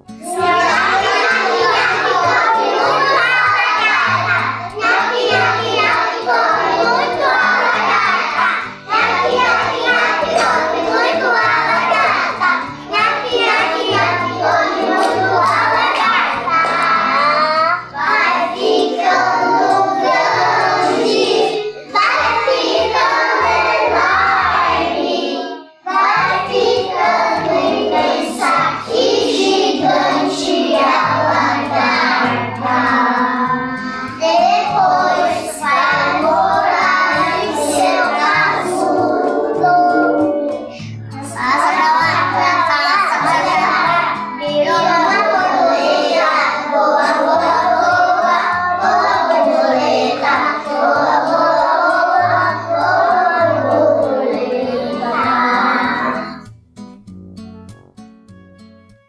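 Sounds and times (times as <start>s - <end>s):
children singing: 0.0s - 56.5s.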